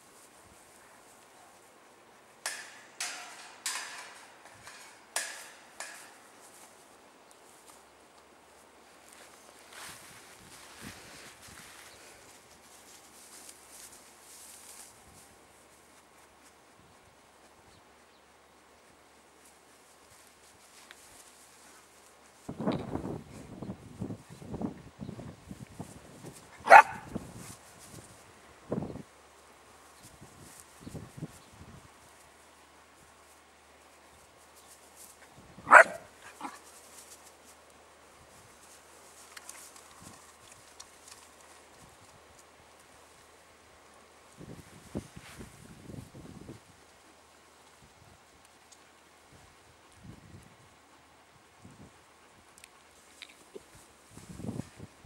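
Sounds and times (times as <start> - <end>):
faint rustling: 0.0 - 18.0, 18.7 - 24.6, 29.3 - 46.1
puppy barking: 26.7 - 27.1, 35.7 - 36.6.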